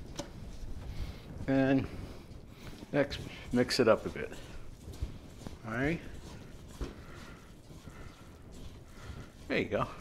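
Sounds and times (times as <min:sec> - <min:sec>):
hands mixing bread in bowl: 0:00.0 - 0:10.0.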